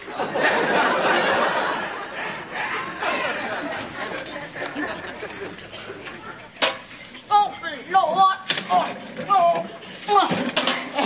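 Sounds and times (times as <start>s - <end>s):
person speaking: 7.2s - 10.3s.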